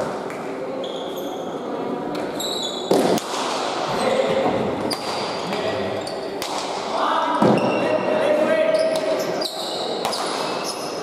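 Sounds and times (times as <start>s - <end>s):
murmur of spectators' voices: 0.0s - 11.0s.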